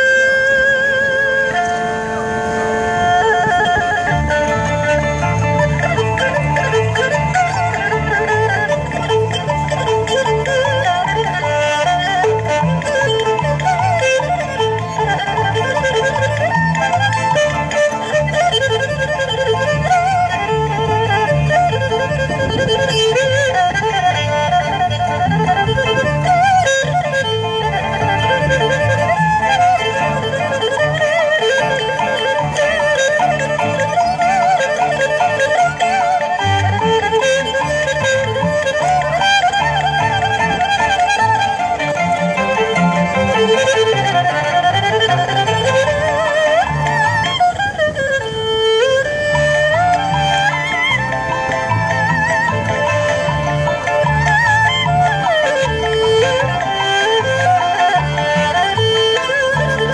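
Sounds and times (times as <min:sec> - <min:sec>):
erhu melody with vibrato: 0:00.0 - 0:59.9
backing track bass pattern: 0:03.6 - 0:48.0.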